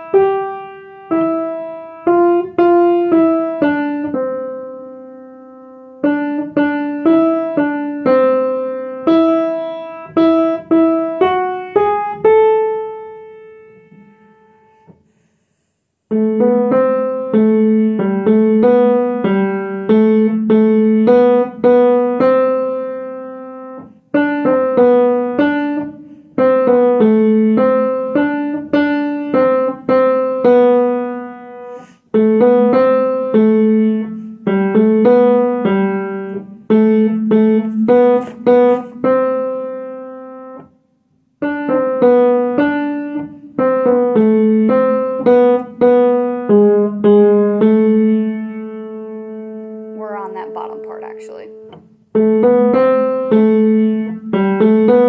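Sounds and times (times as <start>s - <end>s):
slow piano tune: 0.0s - 55.0s.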